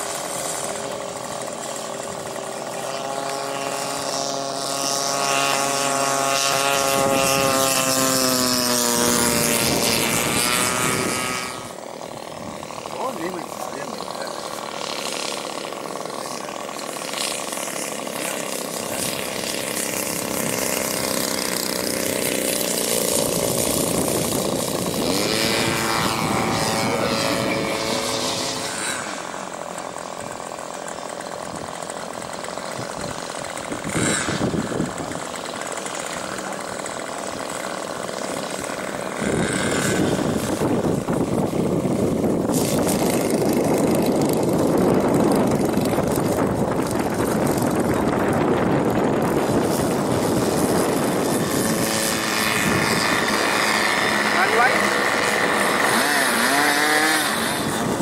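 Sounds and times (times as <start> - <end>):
model airplane engine and propeller: 0.0 - 58.0.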